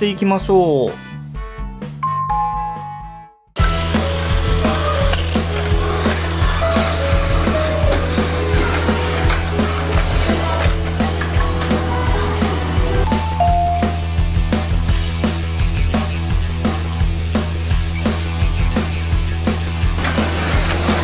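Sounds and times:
background music: 0:00.0 - 0:21.0
toy car clattering on track: 0:03.8 - 0:11.9, 0:20.0 - 0:21.0.

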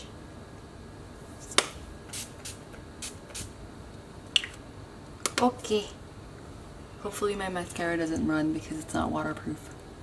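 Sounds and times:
spray bottle hissing: 0:02.1 - 0:03.5.

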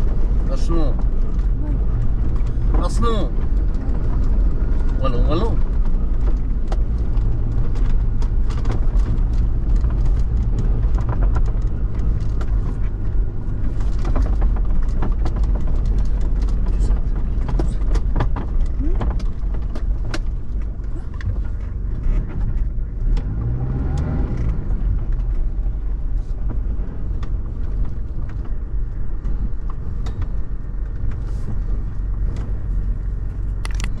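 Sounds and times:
engine and road rumble: 0:00.0 - 0:34.0
sharp clicks and rattles: 0:00.0 - 0:34.0.

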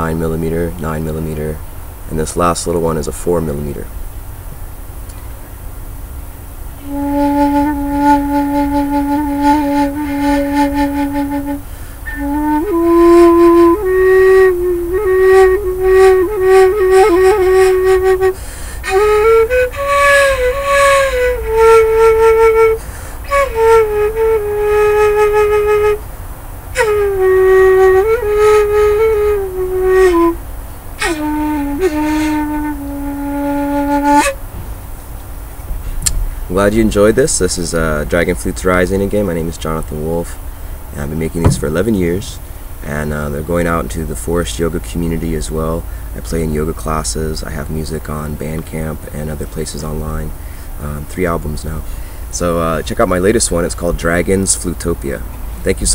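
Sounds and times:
bamboo flute melody: 0:06.8 - 0:26.0, 0:26.7 - 0:30.4, 0:31.0 - 0:34.4, 0:41.3 - 0:42.4.

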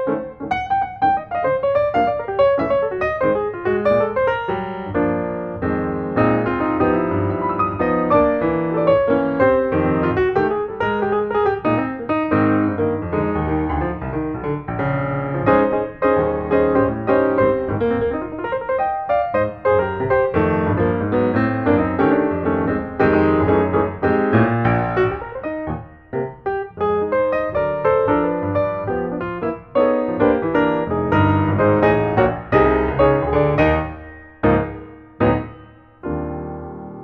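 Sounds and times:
piano music: 0:00.0 - 0:37.0.

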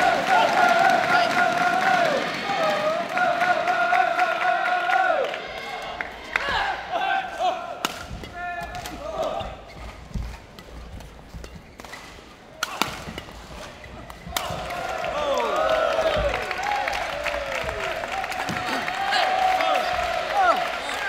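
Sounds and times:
supporters shouting: 0:00.0 - 0:09.5, 0:14.3 - 0:21.0
racket striking shuttlecock: 0:09.7 - 0:14.7.

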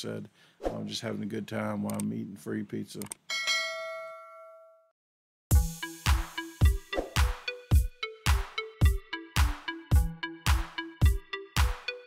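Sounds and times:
notification bell ding: 0:03.3 - 0:04.8.

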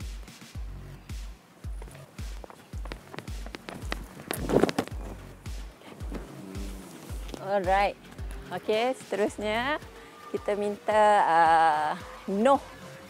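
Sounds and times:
background music with steady beat: 0:00.0 - 0:13.0
running footsteps on rubber track: 0:01.1 - 0:08.5.

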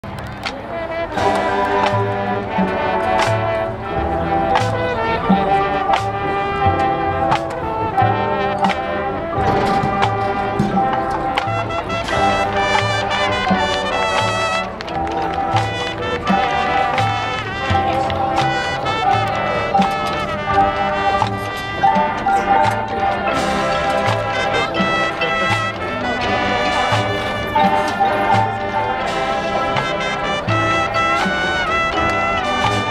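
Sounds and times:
brass chords: 0:00.0 - 0:32.9
percussion hits: 0:00.0 - 0:32.9
sousaphone bass notes: 0:00.0 - 0:32.9.

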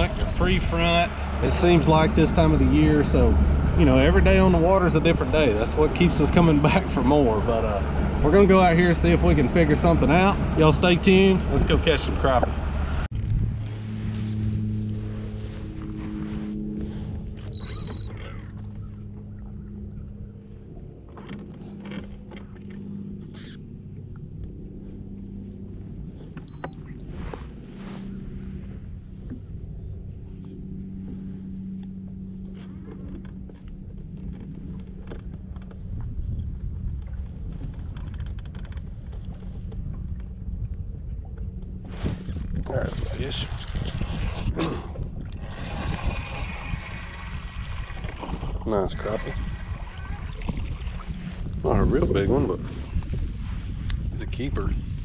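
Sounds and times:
electric trolling motor humming: 0:00.0 - 0:35.9, 0:41.1 - 0:51.6.

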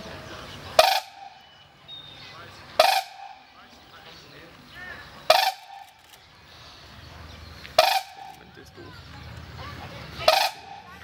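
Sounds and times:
crane call: 0:07.7 - 0:11.0.

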